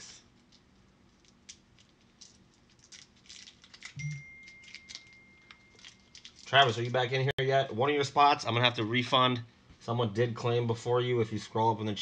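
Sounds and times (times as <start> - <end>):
thin high tone: 4.0 - 6.2.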